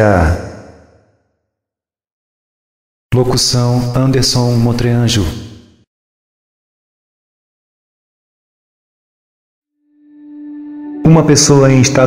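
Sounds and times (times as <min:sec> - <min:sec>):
man speaking with reverberation: 0:00.0 - 0:00.8, 0:03.1 - 0:05.6, 0:11.0 - 0:12.0.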